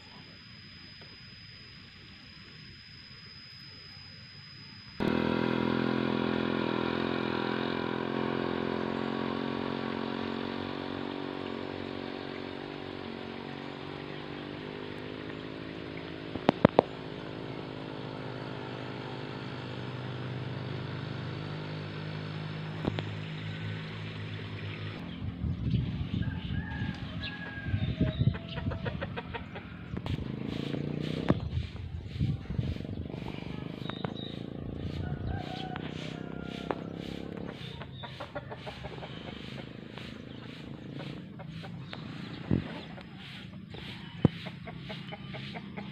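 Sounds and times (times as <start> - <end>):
motorcycle engine running: 3.4 - 45.9
chickens clucking: 27.2 - 45.9.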